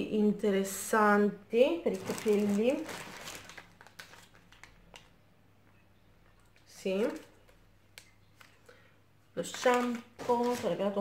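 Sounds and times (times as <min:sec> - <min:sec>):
plastic packet clicks: 0:03.3 - 0:05.2.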